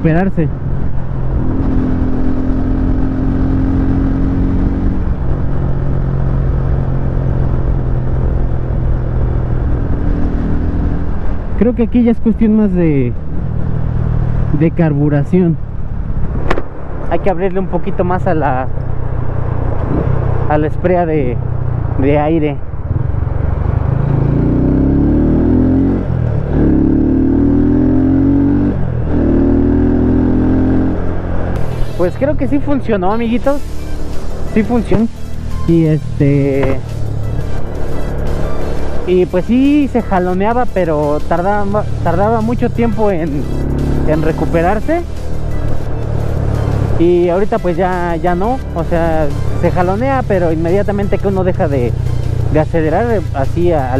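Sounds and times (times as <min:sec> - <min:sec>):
motorcycle engine cruising: 0:00.0 - 0:53.9
wind noise: 0:15.6 - 0:17.3.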